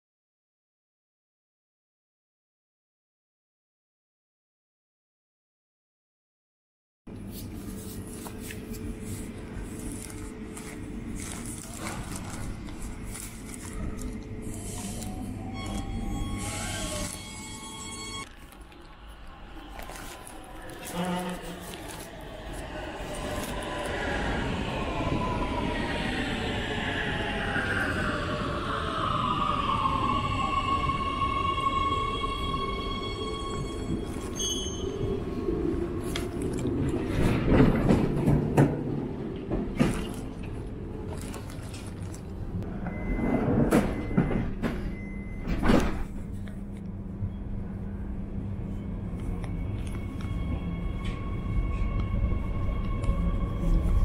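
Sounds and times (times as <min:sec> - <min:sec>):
train doors clicking and clattering: 0:36.9 - 0:39.9, 0:43.2 - 0:46.2
door closing beeps: 0:42.8 - 0:46.0.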